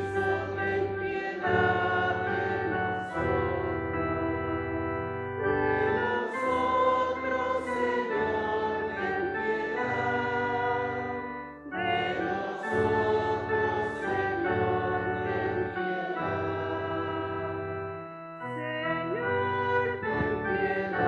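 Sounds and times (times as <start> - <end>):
voices singing chant: 0.0 - 17.8, 19.0 - 21.0
keyboard accompaniment: 0.0 - 21.0.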